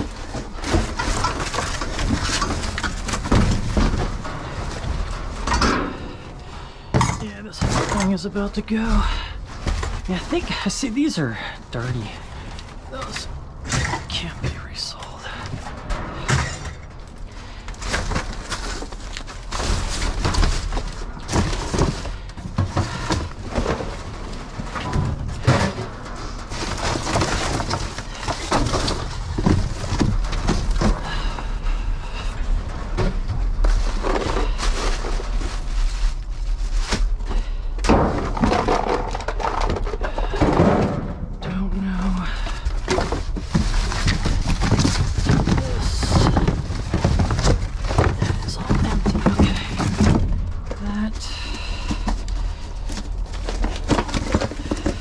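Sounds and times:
cardboard rustling and scraping: 0.0 - 6.4, 7.2 - 14.7, 15.4 - 41.1, 42.1 - 55.0
thuds and clunks in metal dumpster: 0.1 - 8.1, 37.8 - 41.4.

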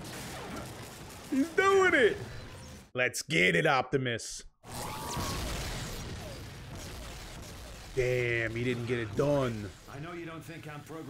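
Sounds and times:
falling laser zaps: 0.0 - 2.8, 4.7 - 10.7
crackling electricity rush: 4.7 - 11.0.

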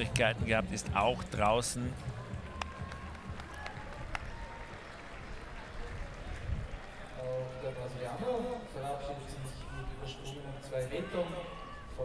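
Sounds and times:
murmur of spectators: 0.0 - 12.0
scattered claps: 2.0 - 7.0.

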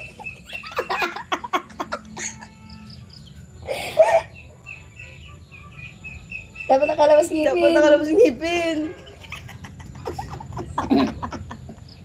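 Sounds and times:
small birds chirping: 0.0 - 12.0
burst of laughter: 9.0 - 11.9.

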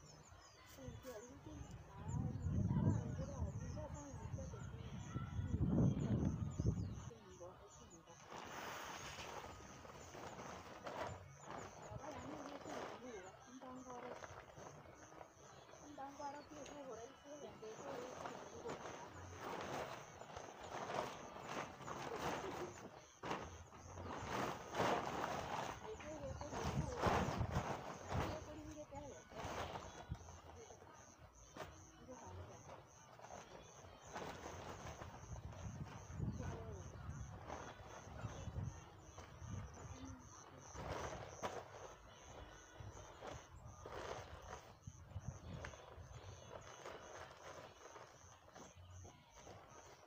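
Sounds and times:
quiet voices talking: 0.0 - 50.0
sack rustling: 8.2 - 15.5, 17.8 - 30.4.

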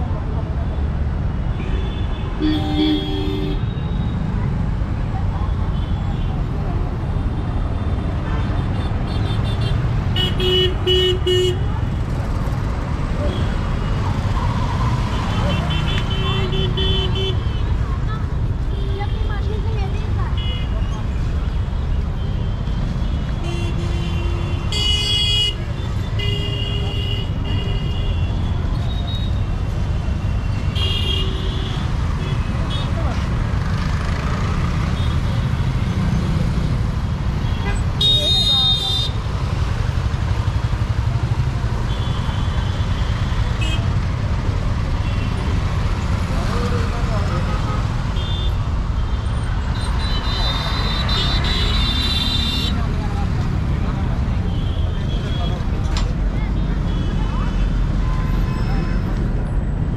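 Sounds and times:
road traffic rumble: 0.0 - 59.9
crowd of voices: 52.7 - 59.9.

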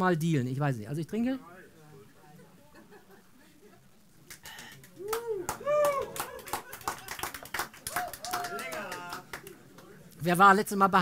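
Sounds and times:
audience clapping: 4.2 - 10.0.

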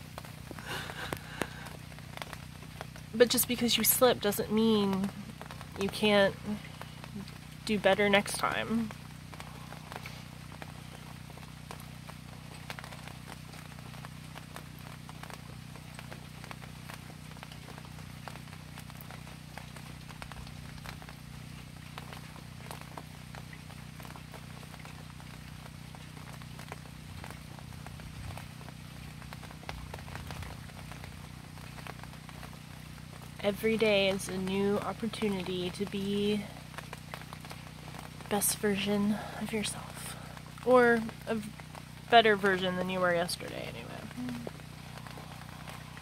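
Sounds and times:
low hum: 0.0 - 46.0
rain drops ticking: 0.0 - 46.0.

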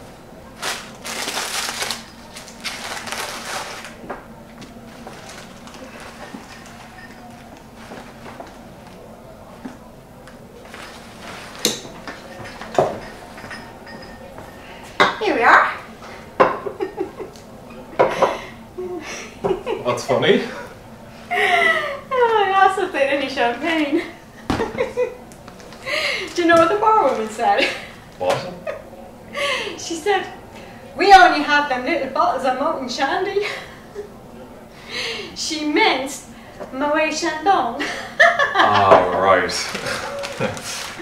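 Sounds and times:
woman laughing: 21.3 - 22.4, 23.9 - 25.2, 27.4 - 27.9, 37.8 - 38.9, 39.8 - 40.8.

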